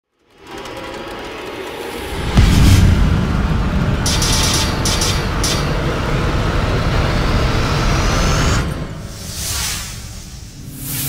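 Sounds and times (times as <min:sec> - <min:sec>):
faint rising whine: 0:01.9 - 0:09.0
airy whooshes: 0:02.0 - 0:04.2
deep sustained rumble: 0:02.0 - 0:08.5.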